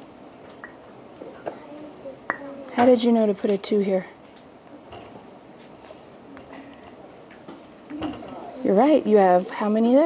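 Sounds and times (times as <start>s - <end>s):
faint distant children's voices: 1.2s - 3.0s, 7.9s - 8.7s.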